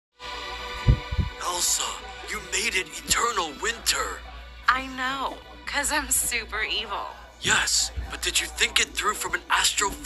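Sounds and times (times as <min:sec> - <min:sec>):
deep thuds: 0:00.8 - 0:01.4.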